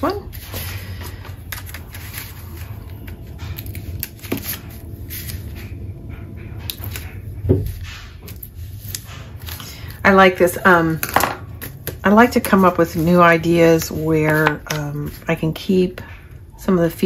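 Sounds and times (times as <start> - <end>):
paper rustling: 0.0 - 5.8, 6.6 - 10.5, 11.6 - 15.4.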